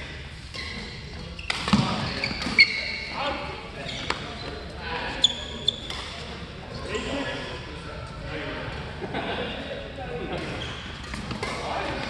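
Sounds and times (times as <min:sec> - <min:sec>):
sneakers squeaking on court floor: 0:00.4 - 0:03.2, 0:03.8 - 0:06.4, 0:10.4 - 0:11.6.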